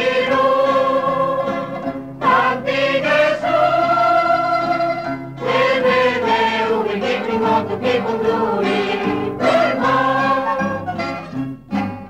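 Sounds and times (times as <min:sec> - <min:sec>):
choir singing: 0:00.0 - 0:11.2.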